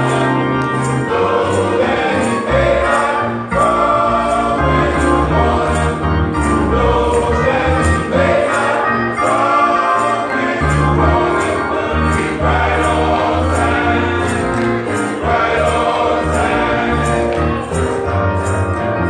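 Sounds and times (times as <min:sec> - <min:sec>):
men's choir singing in harmony: 0:00.0 - 0:19.0.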